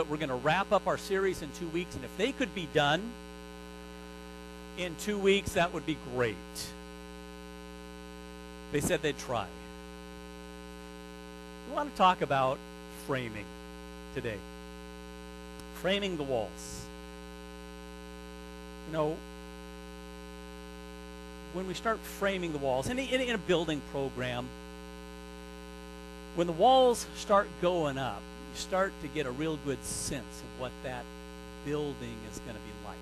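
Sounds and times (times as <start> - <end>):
man's voice: 0.0 - 3.1, 4.8 - 6.8, 8.8 - 9.6, 11.7 - 13.5, 14.1 - 14.5, 15.8 - 16.9, 18.9 - 19.2, 21.5 - 24.5, 26.4 - 33.0
electrical mains hum: 0.0 - 33.0.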